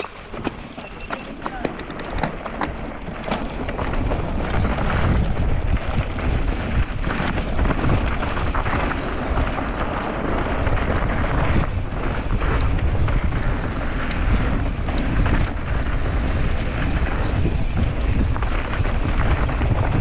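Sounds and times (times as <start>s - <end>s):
bike rattling over rough ground: 0.0s - 20.0s
tyres on loose stones: 0.0s - 20.0s
wind buffeting microphone: 0.0s - 20.0s.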